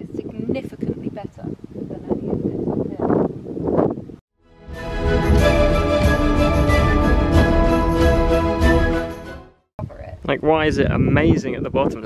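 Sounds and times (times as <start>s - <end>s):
wind buffeting microphone: 0.0s - 4.2s, 4.9s - 8.1s, 9.8s - 12.0s
background music sustained tones: 4.4s - 9.7s.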